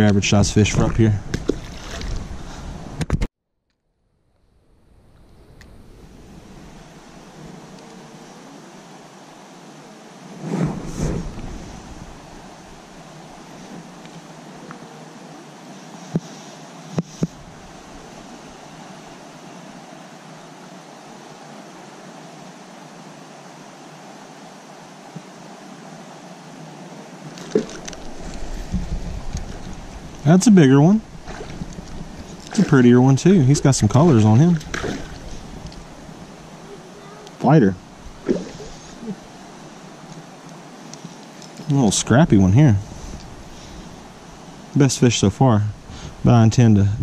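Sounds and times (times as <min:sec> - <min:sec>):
wind or handling noise: 0:00.0 - 0:08.0, 0:10.4 - 0:14.8, 0:27.2 - 0:36.6, 0:37.2 - 0:44.8
creek water rushing: 0:06.0 - 0:47.0.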